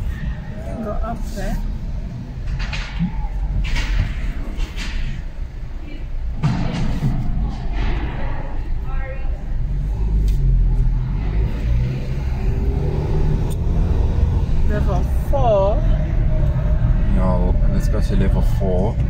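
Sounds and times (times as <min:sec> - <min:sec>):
car engine and tyres rumbling: 0:00.0 - 0:19.0.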